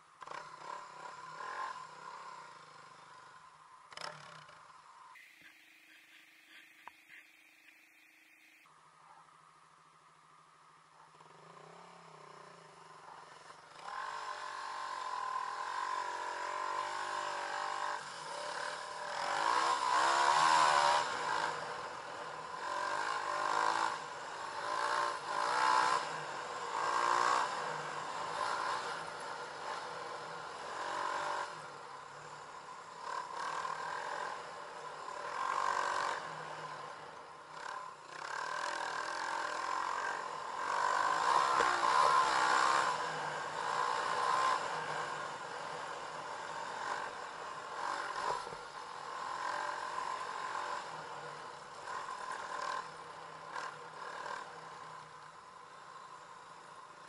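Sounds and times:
dirt bike engine revving: 0.2 - 8.7, 11.2 - 55.1.

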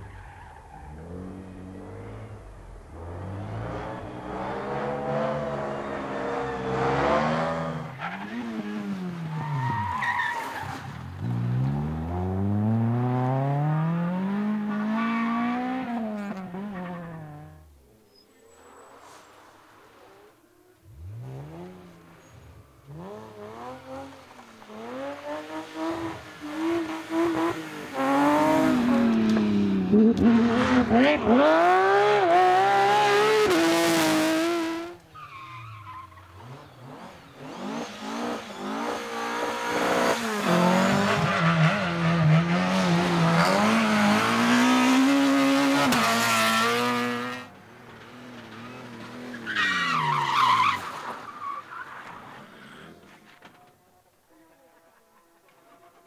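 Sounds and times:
rally car engines revving: 0.0 - 53.6.

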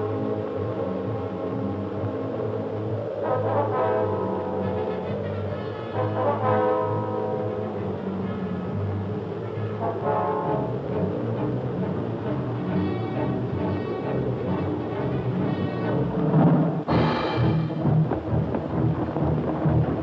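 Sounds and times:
orchestral brass chords: 3.2 - 20.0.

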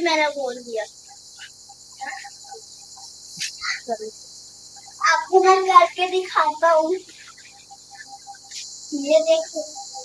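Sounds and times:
faint rapid chirp: 0.0 - 10.0
light hiss: 0.0 - 10.0.

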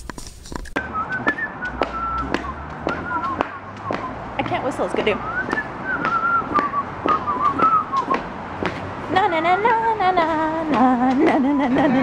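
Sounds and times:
footsteps on concrete: 0.0 - 12.0
person whistling a tune: 0.8 - 4.2, 5.2 - 8.2.

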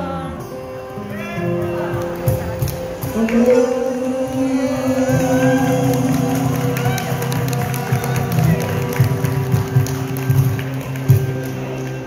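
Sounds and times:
acoustic guitar chords: 0.0 - 12.0
bass guitar: 0.0 - 12.0.

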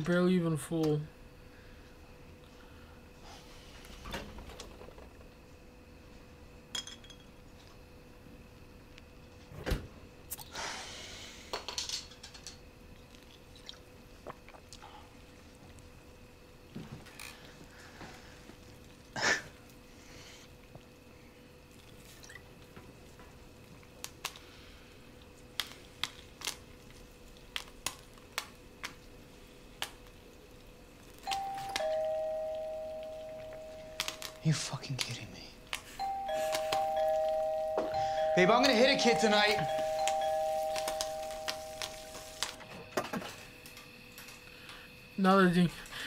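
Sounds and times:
two-tone doorbell chime: 31.2 - 34.5, 35.9 - 42.4.

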